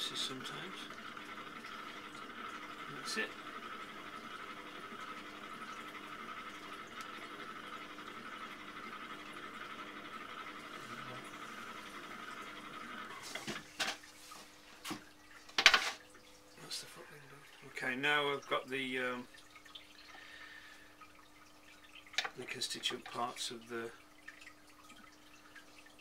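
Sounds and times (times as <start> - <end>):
potter's wheel humming: 0.0 - 14.4.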